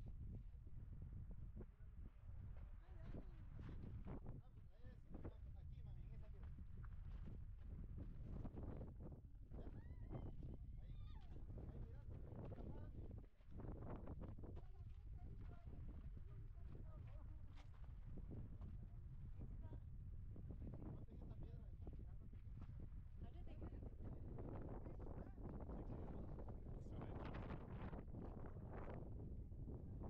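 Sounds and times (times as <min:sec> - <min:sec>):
wind rumbling on microphone: 0:00.0 - 0:30.0.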